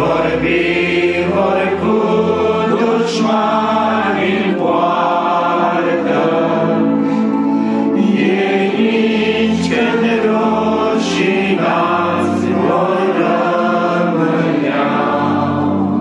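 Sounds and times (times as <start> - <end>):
group singing a hymn: 0.0 - 16.0.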